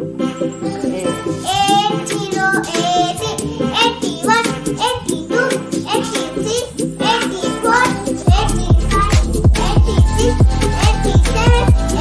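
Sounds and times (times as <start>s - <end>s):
backing music with steady beat: 0.0s - 12.0s
child singing: 0.5s - 12.0s.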